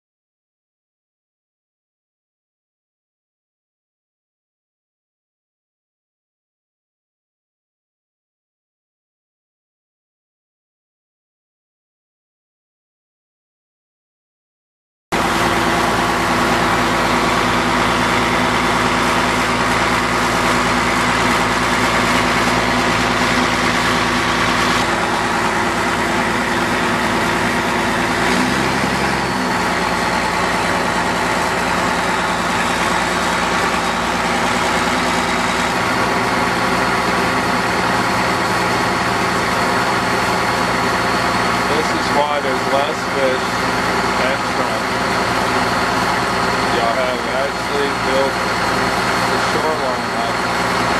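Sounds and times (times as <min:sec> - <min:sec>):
boat engine droning: 0:15.2 - 0:50.9.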